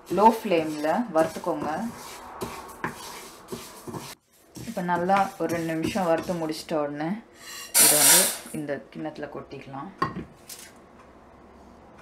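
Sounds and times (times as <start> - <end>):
lentils scraping in a pan: 0.0 - 6.6.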